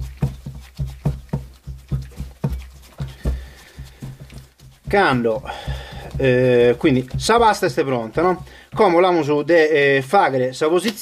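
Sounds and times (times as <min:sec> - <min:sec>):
dough thumping in glass bowl: 0:00.0 - 0:09.5.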